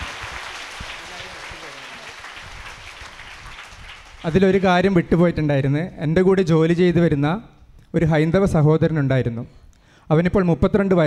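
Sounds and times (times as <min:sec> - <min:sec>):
audience applauding: 0:00.0 - 0:05.0.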